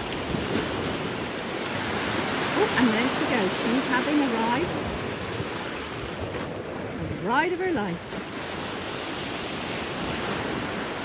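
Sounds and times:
small waves breaking: 0.0s - 11.0s.

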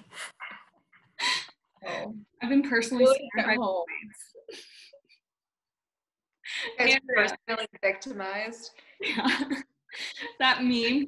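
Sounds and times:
women laughing: 9.0s - 9.7s.

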